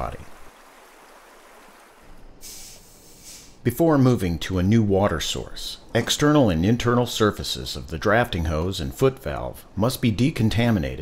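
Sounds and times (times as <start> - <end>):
bright hiss: 2.4 - 3.6.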